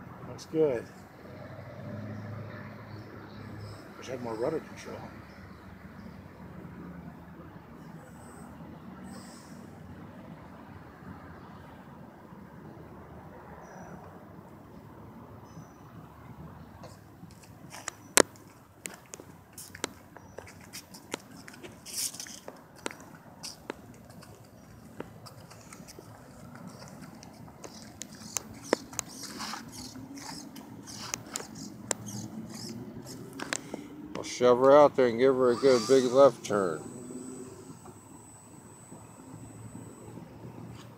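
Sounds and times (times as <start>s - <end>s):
sharp clicks and knocks: 16.8s - 34.8s
model plane motor humming: 25.2s - 33.8s, 35.2s - 40.9s.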